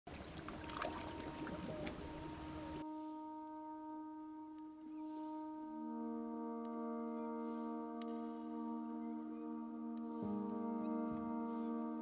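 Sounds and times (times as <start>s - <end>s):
small water splashes: 0.1s - 2.8s
water lapping among rocks: 0.1s - 2.8s
sustained musical chord: 0.6s - 12.0s.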